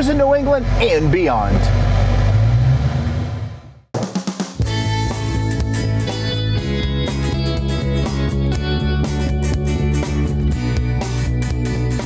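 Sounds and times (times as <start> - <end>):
car engine rumbling: 0.0 - 3.9, 4.6 - 12.0.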